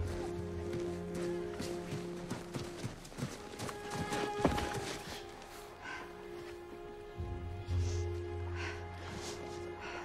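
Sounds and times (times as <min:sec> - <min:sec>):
footsteps crunching on snow: 0:00.0 - 0:05.7.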